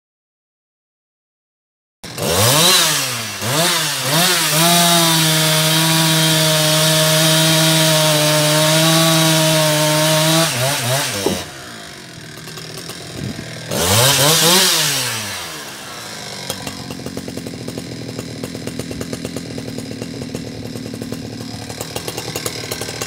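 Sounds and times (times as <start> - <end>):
chainsaw revving and cutting log: 2.0 - 23.0.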